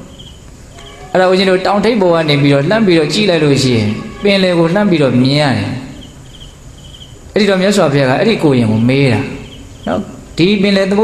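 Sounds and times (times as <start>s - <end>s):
insect chirping: 0.0s - 11.0s
man speaking: 1.1s - 6.0s, 7.4s - 11.0s.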